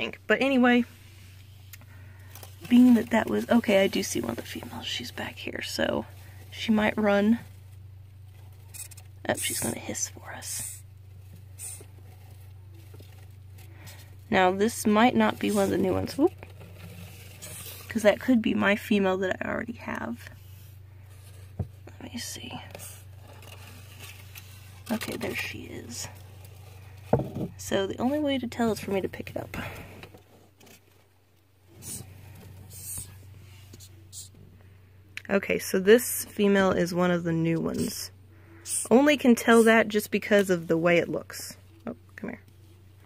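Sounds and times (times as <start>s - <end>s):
artificial plants rustling: 0.0s - 43.0s
low electrical hum: 0.0s - 43.0s
cockroach hissing: 11.5s - 11.9s.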